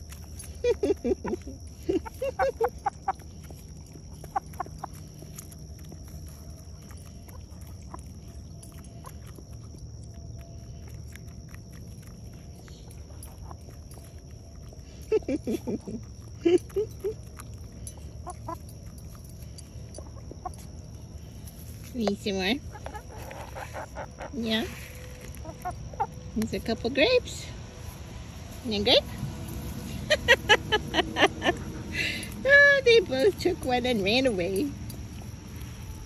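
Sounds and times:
hens pecking: 0:00.0 - 0:36.0
hens clucking: 0:00.8 - 0:05.4, 0:22.0 - 0:27.1.

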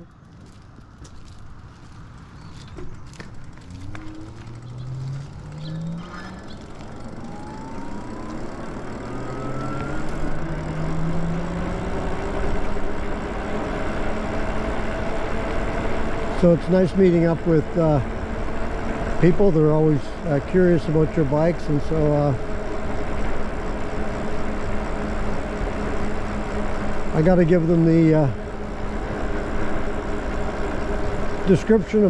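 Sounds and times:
tyre noise: 0:00.0 - 0:07.2
electric bike motor whining: 0:00.0 - 0:32.0
wind: 0:00.0 - 0:32.0.

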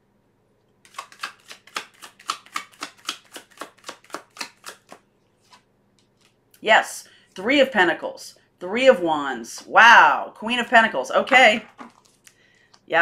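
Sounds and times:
cards shuffling: 0:00.8 - 0:06.4, 0:11.6 - 0:12.8.

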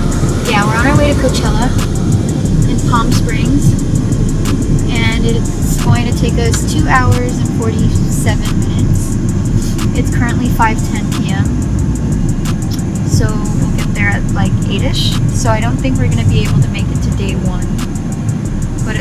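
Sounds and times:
person speaking: 0:00.0 - 0:03.8, 0:04.9 - 0:11.5, 0:12.7 - 0:17.8
car road and engine noise: 0:00.0 - 0:19.0.

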